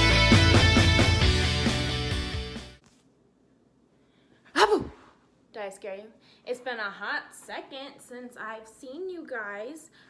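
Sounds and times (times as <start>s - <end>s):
woman's short vocal burst: 4.5s - 5.2s.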